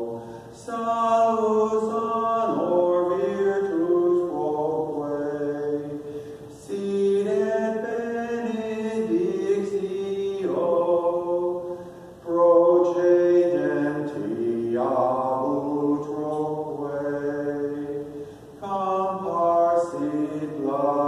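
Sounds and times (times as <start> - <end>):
chant-like sacred singing: 0.0 - 21.0.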